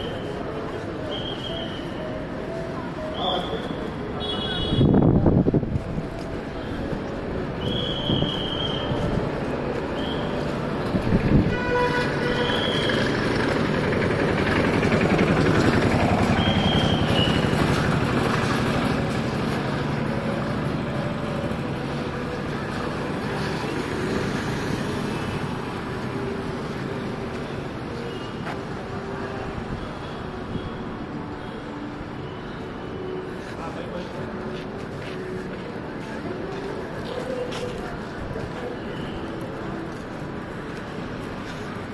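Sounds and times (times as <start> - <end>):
road traffic: 0.0 - 41.9
vehicle horn toots: 4.2 - 5.0, 11.4 - 13.0.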